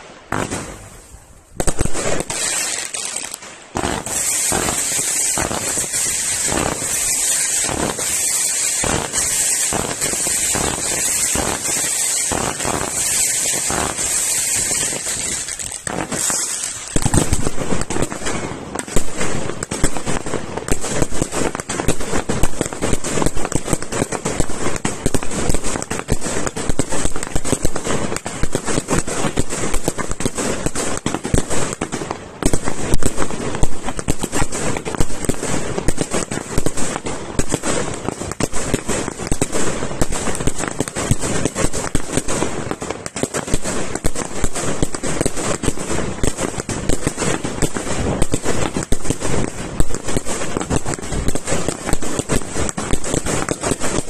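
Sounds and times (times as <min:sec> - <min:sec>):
fireworks bangs and crackling: 0:00.0 - 0:54.0.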